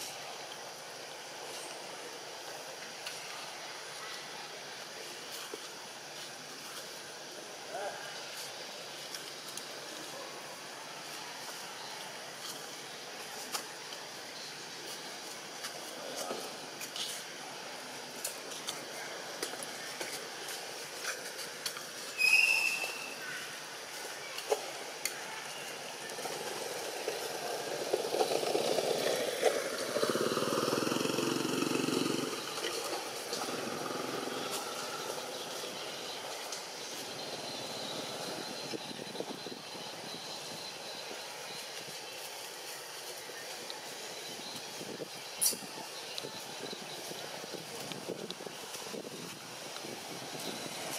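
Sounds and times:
steady hiss: 0:00.0 - 0:50.9
high-pitched squeak: 0:22.2 - 0:23.2
motor vehicle passing: 0:27.6 - 0:35.6.

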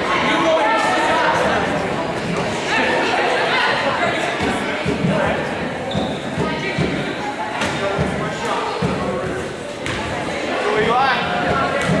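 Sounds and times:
voices echoing in a gym: 0:00.0 - 0:12.0.

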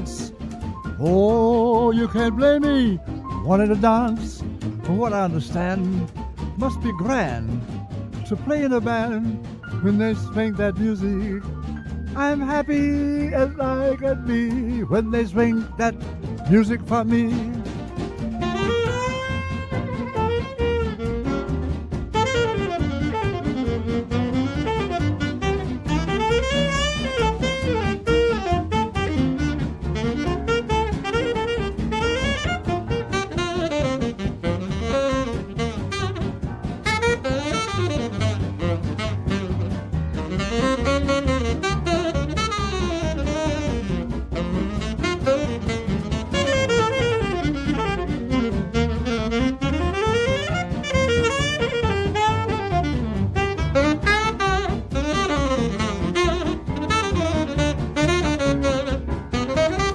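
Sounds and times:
swing jazz band: 0:00.0 - 0:59.9
saxophone solo: 0:18.2 - 0:59.9.

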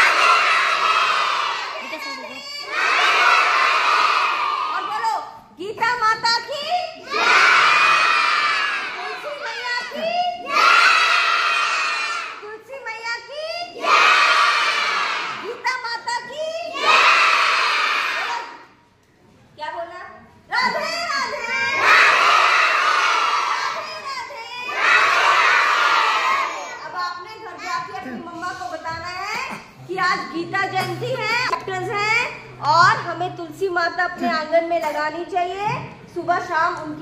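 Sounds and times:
children shouting in unison: 0:00.0 - 0:04.9, 0:07.0 - 0:12.4, 0:13.7 - 0:15.5, 0:16.7 - 0:18.7, 0:20.7 - 0:26.9.

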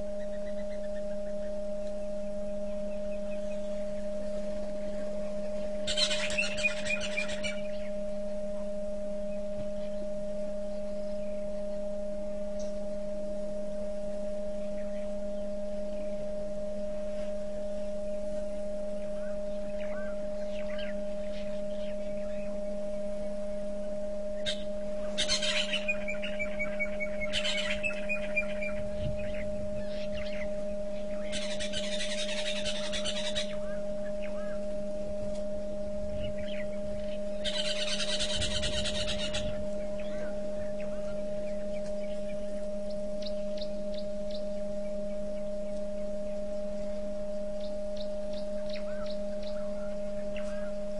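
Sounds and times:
wild birds calling: 0:00.0 - 0:11.9, 0:18.9 - 0:23.6, 0:24.3 - 0:35.4, 0:36.0 - 0:50.9
low hum: 0:00.0 - 0:50.9.

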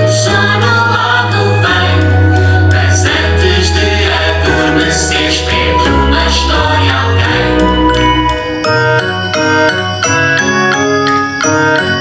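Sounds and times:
singing voices: 0:00.0 - 0:08.4
held bass line: 0:00.0 - 0:10.4.

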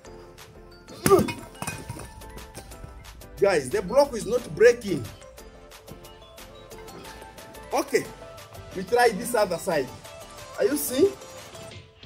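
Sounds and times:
background music: 0:00.0 - 0:12.0
concrete block landing on gravel: 0:01.0 - 0:03.0.

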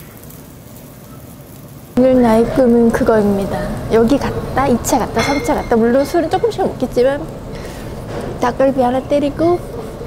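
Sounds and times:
meat sizzling on a grill: 0:00.0 - 0:10.0.

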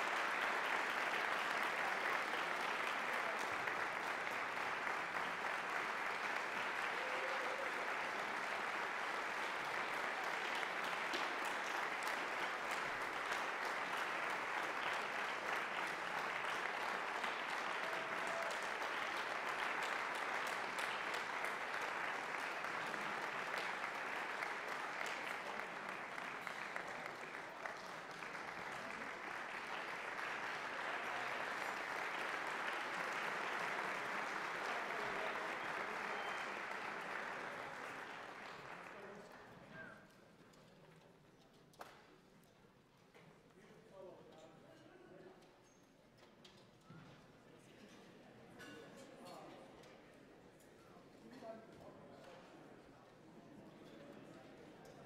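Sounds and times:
audience applauding: 0:00.0 - 0:39.6.

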